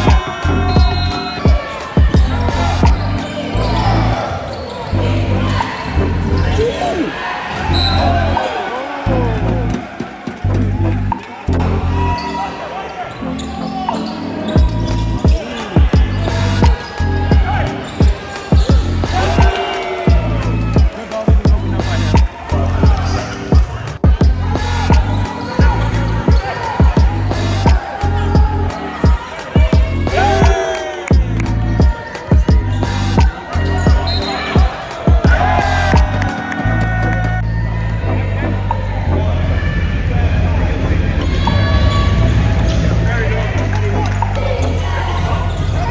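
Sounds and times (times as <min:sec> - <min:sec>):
music: 0:00.0 - 0:45.9
voices: 0:00.0 - 0:45.9
sneaker squeaks: 0:00.1 - 0:08.6, 0:12.0 - 0:19.6, 0:23.6 - 0:29.8, 0:30.4 - 0:37.6, 0:44.1 - 0:45.9.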